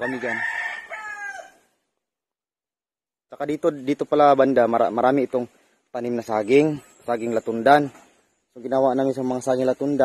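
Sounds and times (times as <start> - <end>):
rooster crowing: 0.0 - 1.7.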